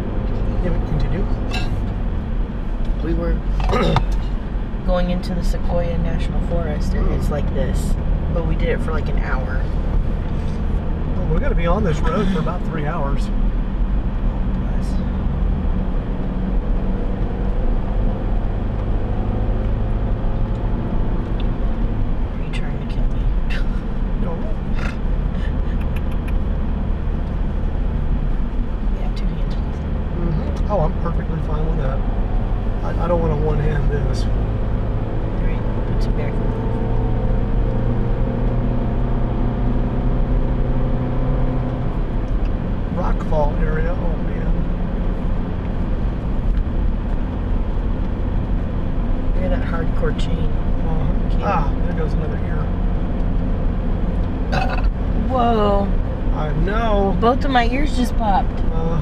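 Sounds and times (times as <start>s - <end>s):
car engine and tyre drone: 0.0s - 59.0s.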